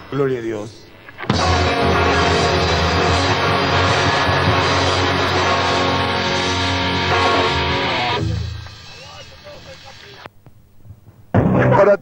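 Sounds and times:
rock band playing live: 1.2 - 9.0
low note ringing: 1.3 - 8.6.

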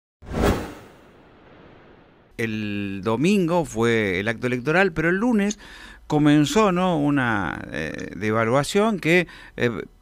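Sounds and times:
whoosh sound effect: 0.2 - 2.3.

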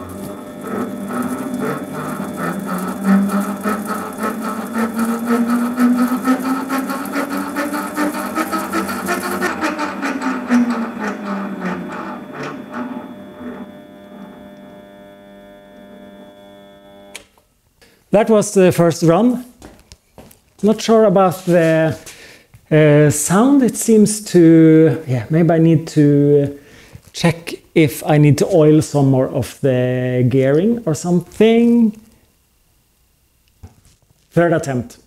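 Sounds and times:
lathe motor whine: 0.0 - 17.3.

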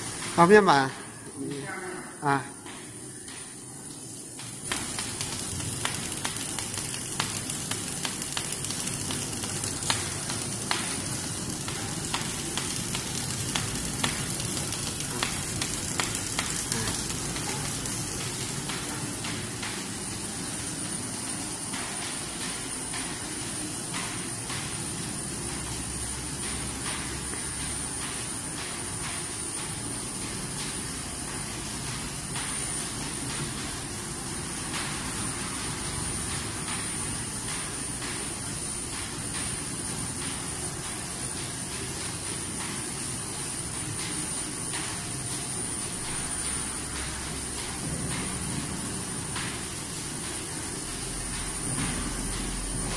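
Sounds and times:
stretch wrapping machine running: 4.0 - 21.6.

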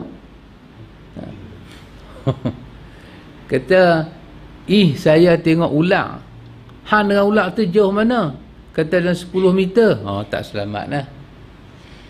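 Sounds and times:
low room hum: 0.0 - 12.0.

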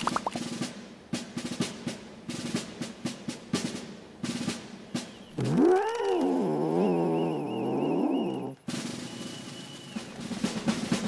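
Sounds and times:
drum roll music: 0.0 - 5.8, 8.4 - 11.0
wavering animal-like yowl: 5.4 - 8.6.

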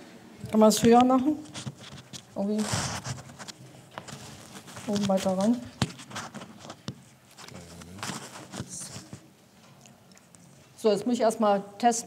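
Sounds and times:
fabric rustling: 1.3 - 9.3.

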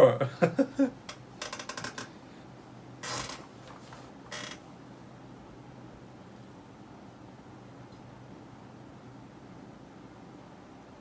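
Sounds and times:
chair creaking: 1.1 - 2.2, 3.0 - 4.7.

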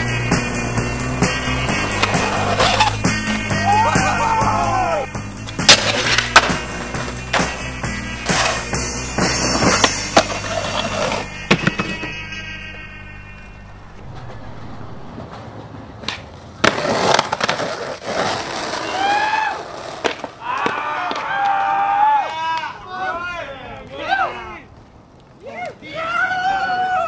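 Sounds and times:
music with bass line: 0.0 - 14.6
skateboard wheels rolling: 0.0 - 23.2, 23.8 - 27.0
board grinding on metal rail: 0.4 - 3.5
skateboard slaps and landings: 5.5 - 12.1, 15.2 - 21.6.

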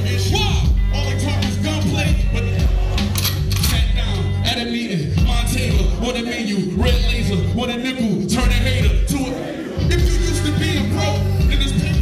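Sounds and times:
hip-hop beat with heavy bass: 0.0 - 12.0
rapper on microphone: 0.0 - 12.0.

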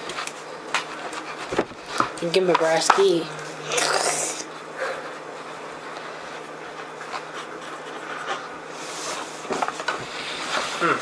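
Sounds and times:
handling taps and rustles: 0.0 - 3.2.

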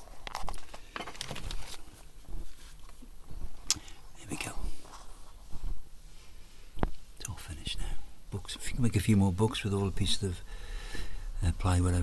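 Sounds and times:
man whispering: 4.0 - 5.1, 7.2 - 10.5, 11.3 - 12.0.

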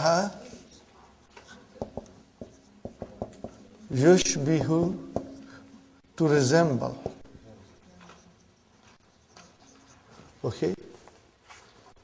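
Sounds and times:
marker pen writing on whiteboard: 1.8 - 3.7.

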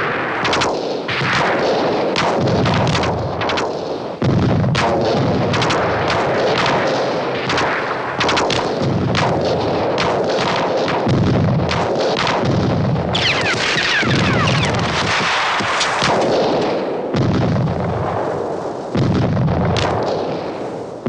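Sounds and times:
rapid gunfire: 0.0 - 18.3, 18.9 - 20.8
shellfire rumble: 0.0 - 21.0.

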